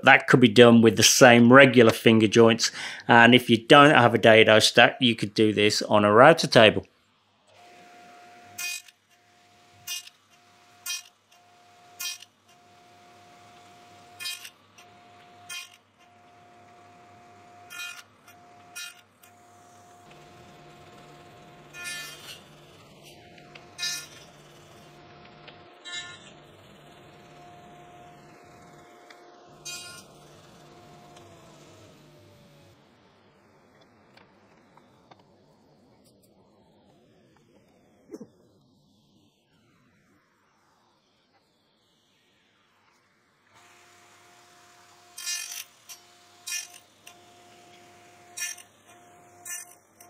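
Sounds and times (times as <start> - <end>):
table saw running: 7.5 - 35.8, 43.5 - 50.0
saw cutting wood: 7.6 - 25.0, 27.1 - 32.7, 43.6 - 50.0
saw blade winding down: 7.6 - 25.1, 25.8 - 32.9, 43.6 - 50.0.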